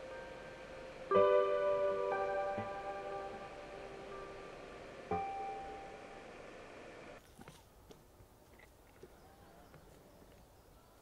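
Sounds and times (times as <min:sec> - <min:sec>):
soft piano music: 0:00.0 - 0:07.2
faint outdoor background: 0:00.0 - 0:11.0.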